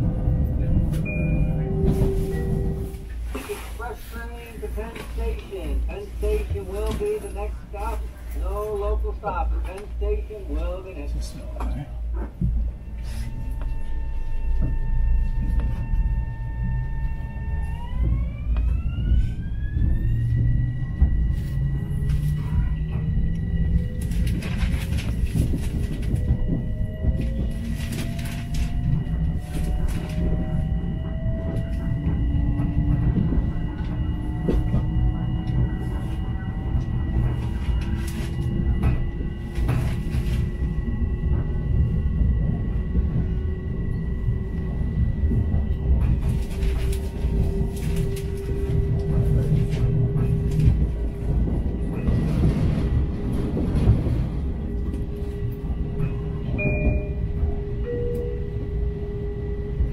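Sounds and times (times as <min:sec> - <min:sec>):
train wheels rumbling on rail: 0:00.0 - 0:59.9.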